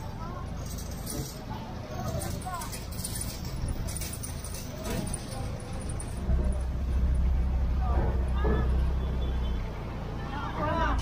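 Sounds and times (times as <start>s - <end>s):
indistinct voices of passersby: 0.0s - 11.0s
traffic rumble: 0.0s - 11.0s.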